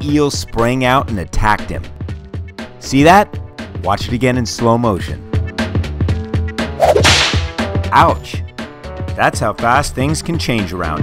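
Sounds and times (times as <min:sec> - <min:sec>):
whip-like swish: 0:06.8 - 0:07.5.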